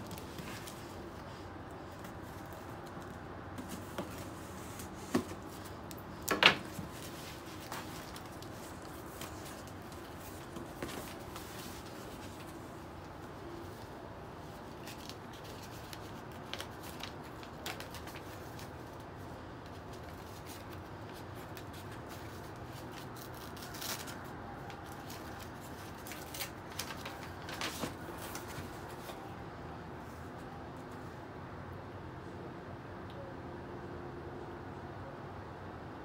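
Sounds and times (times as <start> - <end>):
packing paper crinkling: 0.0 - 29.3.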